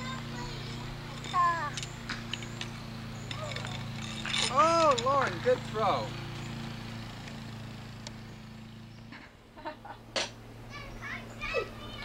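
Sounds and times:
young children chattering: 0:00.0 - 0:01.8, 0:10.6 - 0:12.0.

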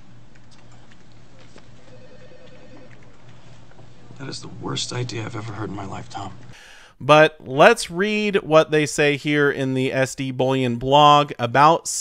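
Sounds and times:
office hum: 0:00.0 - 0:09.6
telephone ringing: 0:01.8 - 0:03.2.

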